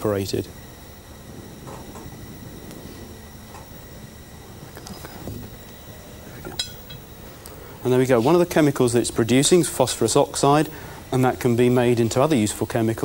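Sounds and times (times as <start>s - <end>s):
low steady hiss: 0.0s - 13.0s.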